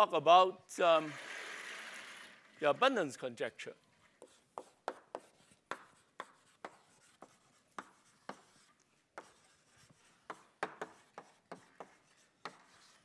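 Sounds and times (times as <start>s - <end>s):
chalk writing on blackboard: 4.1s - 13.0s.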